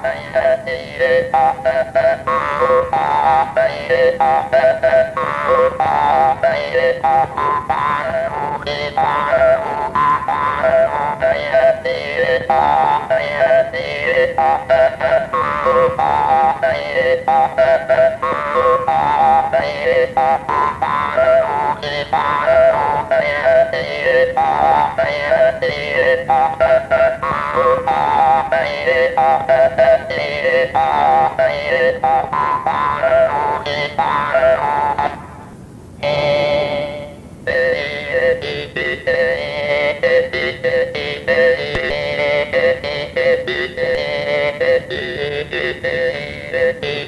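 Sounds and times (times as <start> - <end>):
jaw harp playing over a drone: 0.0 - 47.0.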